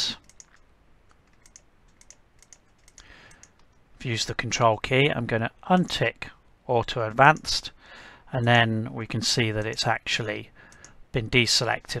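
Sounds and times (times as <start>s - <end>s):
mouse and keyboard clicks: 0.2s - 3.8s.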